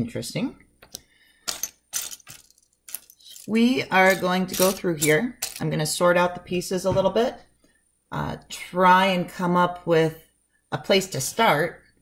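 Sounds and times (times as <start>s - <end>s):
plastic bricks clattering: 1.5s - 5.6s.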